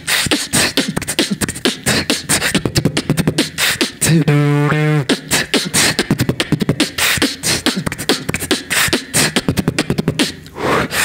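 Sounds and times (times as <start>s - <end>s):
beatboxing through a microphone: 0.0s - 11.0s
held low vocal note: 4.0s - 5.7s.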